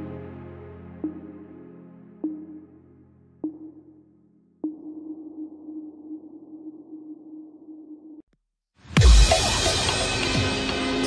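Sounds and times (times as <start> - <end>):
ambient synth music: 0.0 - 8.1
loud music track: 8.9 - 11.0.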